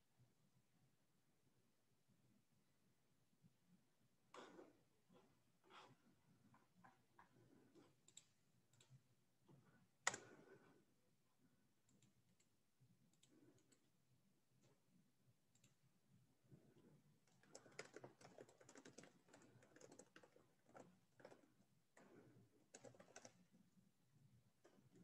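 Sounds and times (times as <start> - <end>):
faint typing on keyboard: 4.3 - 25.0.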